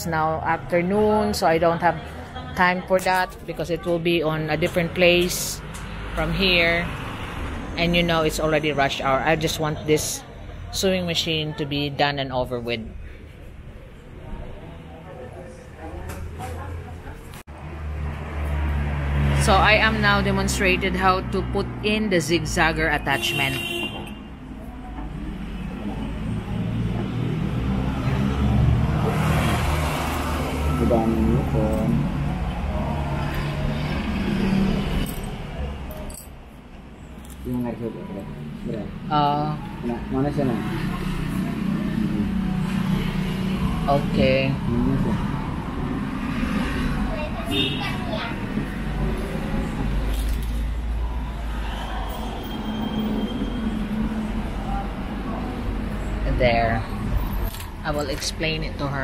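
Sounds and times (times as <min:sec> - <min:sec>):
road traffic rumble: 0:00.0 - 0:59.0
vehicle engine humming: 0:13.2 - 0:59.0.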